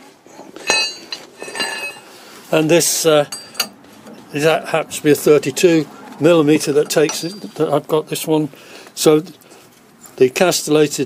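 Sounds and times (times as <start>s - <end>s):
steel hand tools clinking: 0.4s - 2.2s, 2.9s - 3.8s.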